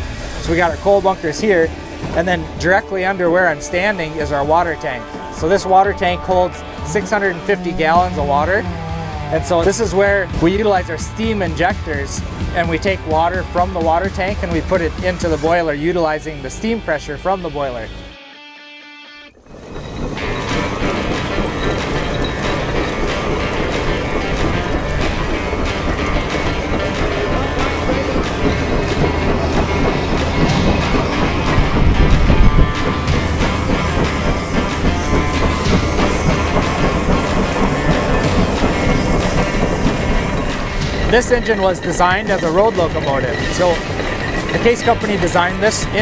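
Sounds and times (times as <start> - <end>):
hissing steam: 0.0 - 8.2, 19.4 - 46.0
machinery clatter: 0.0 - 17.4, 19.4 - 46.0.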